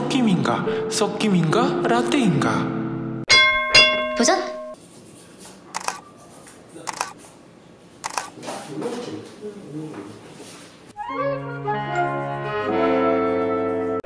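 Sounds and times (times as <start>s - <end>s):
camera shutter clicks: 5.8s - 6.0s, 6.9s - 7.2s, 8.0s - 8.4s
brass and woodwind chords: 11.0s - 14.0s.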